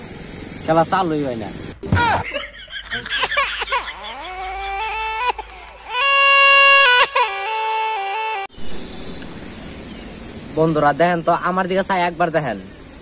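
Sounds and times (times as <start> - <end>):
comedy crying melody: 3.1 - 8.5.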